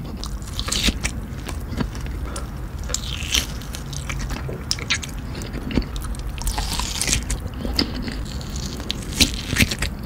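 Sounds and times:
sausage casing crunching: 0:00.0 - 0:10.0
wet chewing mouth sounds: 0:00.0 - 0:10.0.

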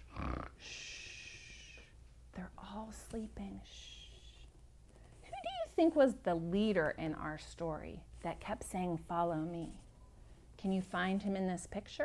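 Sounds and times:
woman whispering: 0:00.4 - 0:04.5.

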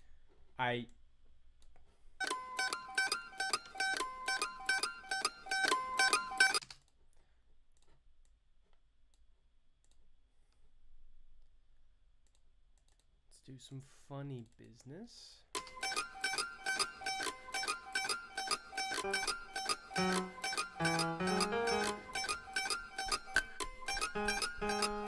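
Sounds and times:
plucked mandolin melody: 0:02.3 - 0:06.6, 0:15.8 - 0:25.0.

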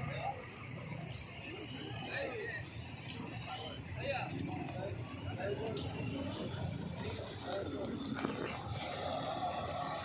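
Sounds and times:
faint voices of people: 0:00.0 - 0:10.0.

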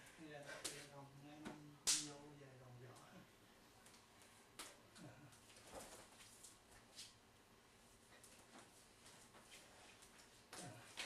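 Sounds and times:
skin-on-skin slap: 0:01.8 - 0:02.2.

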